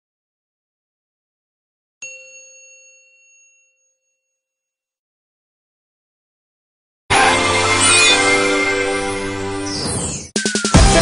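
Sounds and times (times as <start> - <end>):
bright chime: 2.0 - 4.7.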